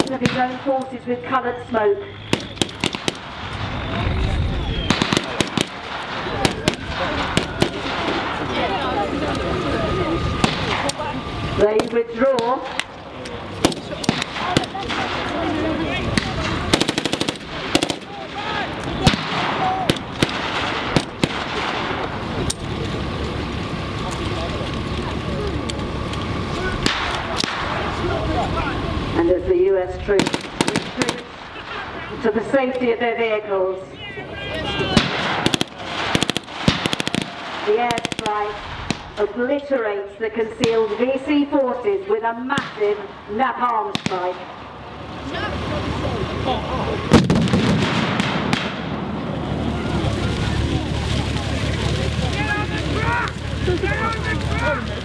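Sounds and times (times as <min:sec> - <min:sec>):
gunfire shots and bursts: 0:00.0 - 0:00.9, 0:02.2 - 0:03.6, 0:04.9 - 0:08.4, 0:13.6 - 0:15.4, 0:16.1 - 0:18.2, 0:19.0 - 0:22.1, 0:30.2 - 0:31.4, 0:35.0 - 0:39.1, 0:43.9 - 0:44.4, 0:47.1 - 0:49.0
truck engine running: 0:00.0 - 0:42.4, 0:43.0 - 0:55.0
people shouting: 0:03.7 - 0:11.4, 0:13.4 - 0:21.8, 0:33.8 - 0:36.0, 0:49.4 - 0:55.0.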